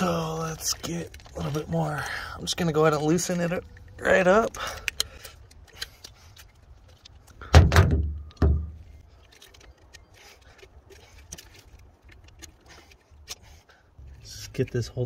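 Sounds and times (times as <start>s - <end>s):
gloved hands handling parts: 0.0s - 15.0s
dull thumps: 7.4s - 8.8s.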